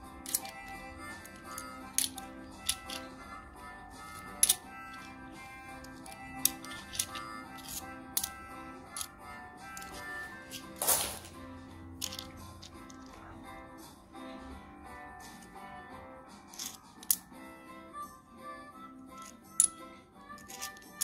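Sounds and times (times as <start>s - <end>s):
background music: 0.0s - 21.0s
coins clicking together: 0.2s - 3.2s, 4.0s - 5.1s, 5.7s - 11.3s, 12.0s - 13.1s, 16.5s - 17.3s, 19.1s - 21.0s.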